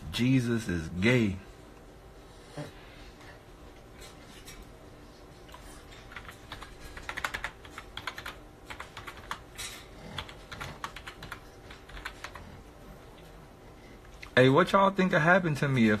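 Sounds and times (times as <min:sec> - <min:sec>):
keyboard typing clicks: 0:06.1 - 0:09.4.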